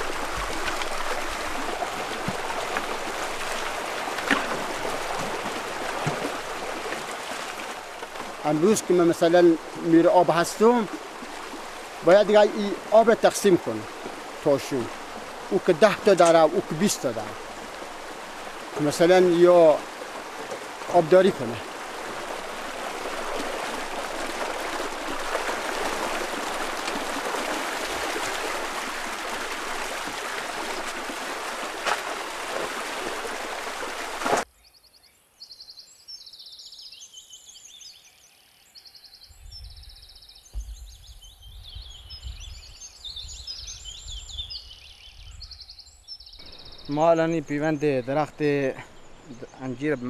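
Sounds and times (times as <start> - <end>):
water rushing through channel: 0.0 - 34.5.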